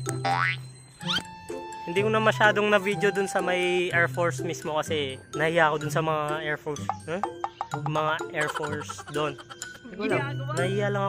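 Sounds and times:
held tone: 0.0s - 3.8s
background music: 0.0s - 11.0s
cartoon boing sweep: 0.2s - 1.2s.

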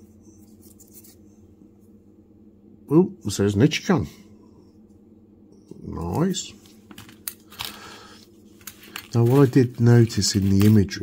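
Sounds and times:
low hum: 0.0s - 10.7s.

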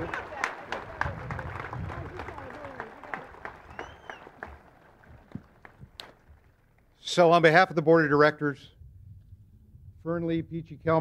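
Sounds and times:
audience applause: 0.0s - 6.6s.

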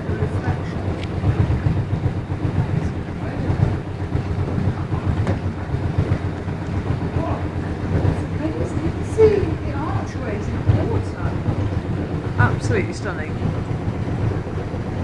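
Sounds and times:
boat engine rumbling in tunnel: 0.0s - 15.0s.

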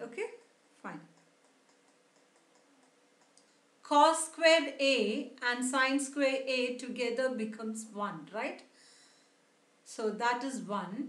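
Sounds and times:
faint ticking: 0.2s - 3.7s.

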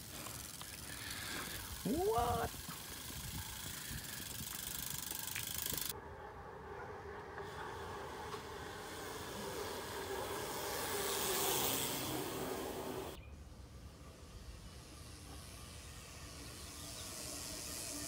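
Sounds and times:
bike tyres rolling on asphalt: 0.0s - 6.0s, 6.6s - 18.0s
steady hiss: 8.0s - 13.2s.

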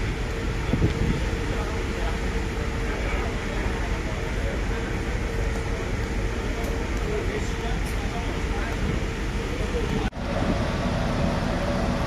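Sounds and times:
ship machinery rumble and hiss: 0.0s - 12.0s.

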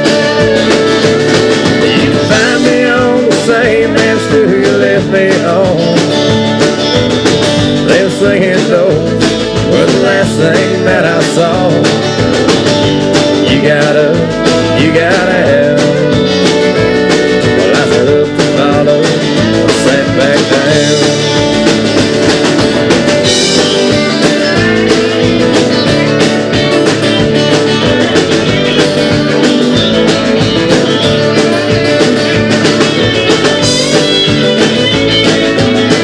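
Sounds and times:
electric guitar lead: 0.0s - 36.0s
steady drum beat: 0.0s - 36.0s
strummed acoustic guitar: 0.0s - 36.0s.

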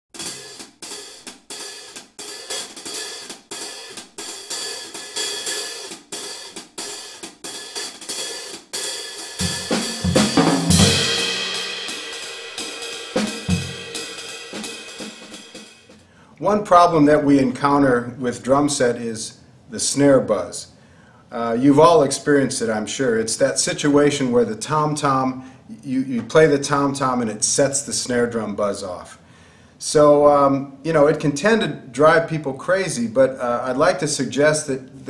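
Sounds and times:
cymbal and snare beat: 0.1s - 16.1s
crash cymbal ringing: 0.2s - 6.4s, 9.1s - 15.9s
low drum hits: 9.4s - 14.2s.

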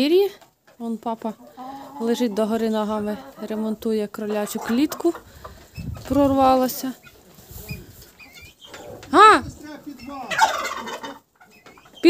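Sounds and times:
chickens clucking: 0.4s - 12.0s.

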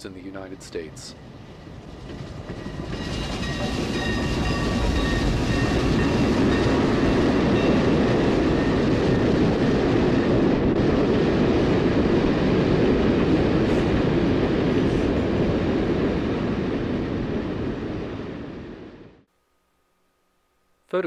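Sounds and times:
steam train rumble: 0.0s - 18.6s.

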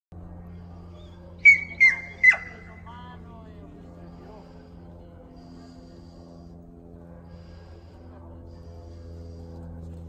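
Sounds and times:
sharp herding whistle blasts: 1.4s - 2.7s.

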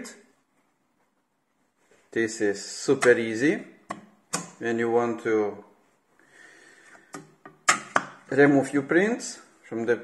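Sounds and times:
soft breath in: 6.2s - 7.1s.

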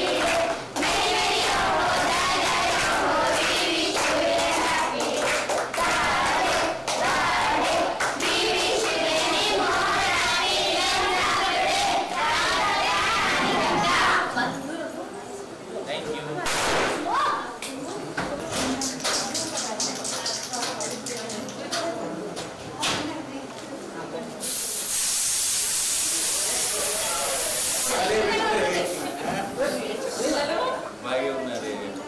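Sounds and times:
aerosol can spraying: 24.4s - 27.9s.

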